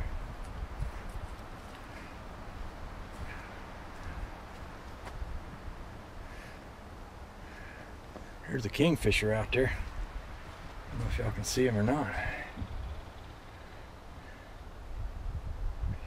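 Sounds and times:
wind rumble on microphone: 0.0s - 6.4s, 9.0s - 13.5s, 14.7s - 16.0s.

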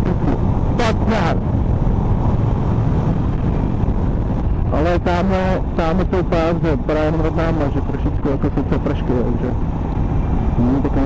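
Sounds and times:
motorcycle engine cruising: 0.0s - 11.0s
wind rush on microphone: 0.0s - 11.0s.

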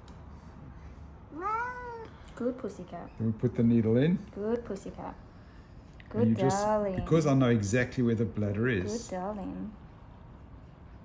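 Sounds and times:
cat meowing: 1.4s - 2.1s.

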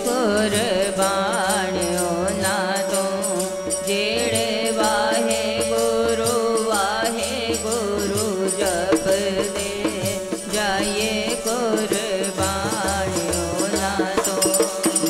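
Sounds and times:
harmonium drone: 0.0s - 15.0s
person singing a devotional hymn: 0.0s - 15.0s.

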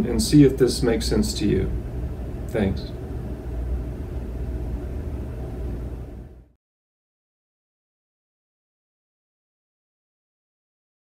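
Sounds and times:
low rumble of room noise: 0.0s - 6.6s.

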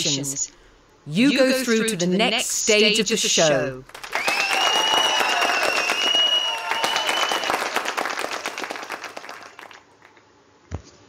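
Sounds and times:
audience applause and cheering: 3.9s - 10.2s.

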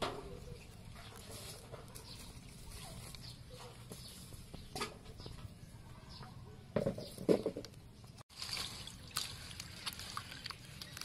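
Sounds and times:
water splashing in metal basin: 8.3s - 11.0s.

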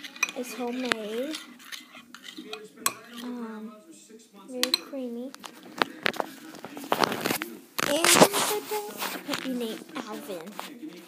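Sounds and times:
spoon clinking against bowl: 0.0s - 3.3s, 4.6s - 5.0s.

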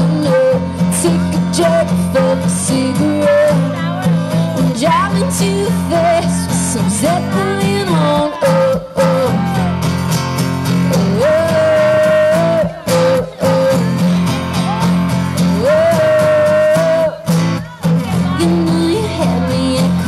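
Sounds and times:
woman singing: 0.0s - 9.7s, 10.9s - 14.8s, 15.4s - 20.0s
strummed acoustic guitar: 0.0s - 20.0s.

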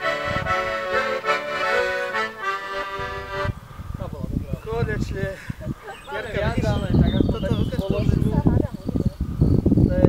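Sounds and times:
wind buffeting microphone: 0.0s - 10.0s
nearby voices: 4.0s - 9.2s
cricket chirping: 5.6s - 10.0s.

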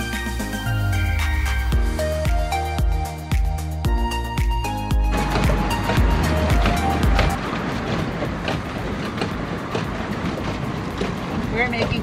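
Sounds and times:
paddle wheel churning water: 5.0s - 12.0s
clicks and knocks: 5.1s - 12.0s.

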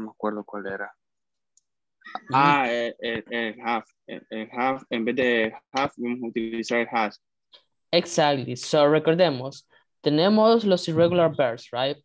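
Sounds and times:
person speaking over video call: 0.0s - 12.0s.

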